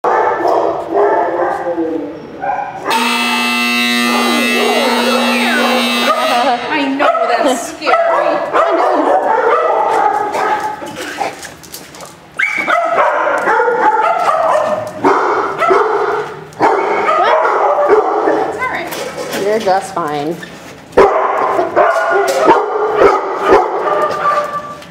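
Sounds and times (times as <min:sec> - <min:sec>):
dogs barking and yipping: 0:00.0 - 0:19.4, 0:20.9 - 0:24.9
steady tone: 0:02.9 - 0:07.0.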